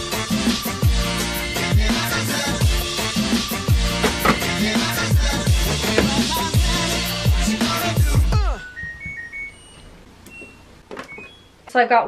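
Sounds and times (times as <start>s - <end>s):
background music: 0.0s - 9.8s
washing machine power-on chime: 8.6s - 11.5s.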